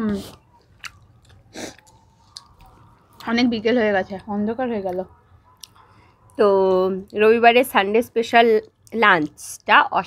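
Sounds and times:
people chewing: 0.0 - 3.3, 4.9 - 7.3
woman speaking: 3.2 - 5.2, 6.4 - 10.0.

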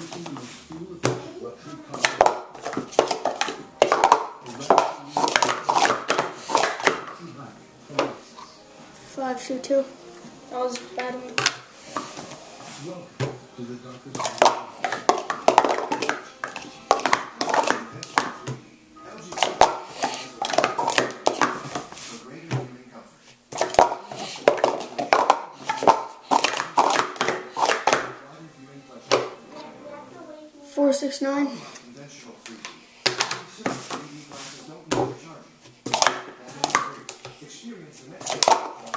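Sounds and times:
plastic cups clattering: 1.9 - 7.2, 14.1 - 18.6, 19.2 - 22.7, 23.5 - 28.2, 35.8 - 37.4, 38.2 - 38.9.

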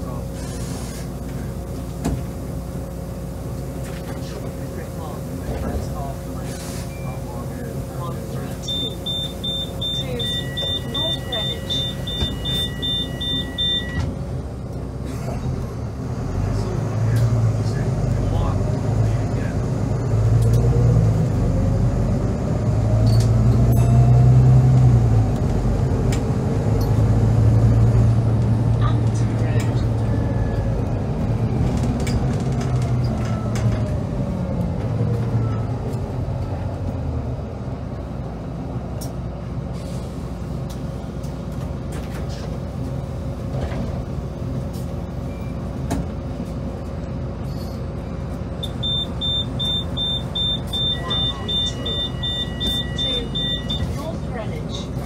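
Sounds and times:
bus diesel engine accelerating: 0.0 - 55.0.

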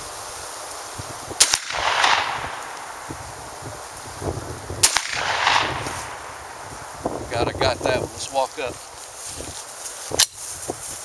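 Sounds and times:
shotgun shots: 1.4 - 3.1, 4.8 - 6.3
gunshot echo rolling: 1.4 - 3.2, 4.8 - 6.6.

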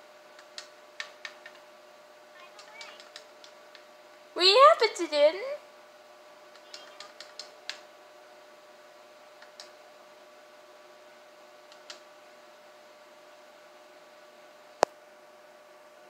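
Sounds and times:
faint electronic hum: 0.0 - 16.0.

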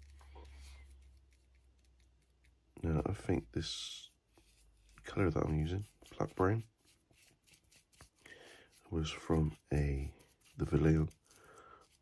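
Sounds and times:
paintbrush scratching and ticking: 0.0 - 12.0.

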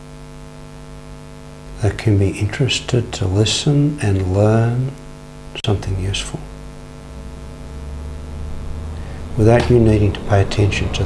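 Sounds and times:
electrical mains hum: 0.0 - 11.0
man speaking: 1.8 - 5.0, 5.6 - 6.5, 9.3 - 11.0.

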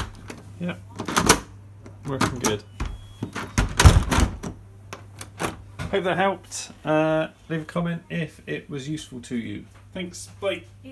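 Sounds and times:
door lock clicks and clunks: 1.0 - 5.6.

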